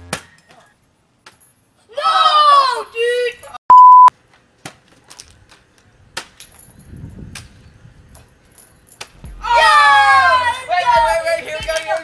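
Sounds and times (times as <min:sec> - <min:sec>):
electronic bleep: 0:03.7 - 0:04.1.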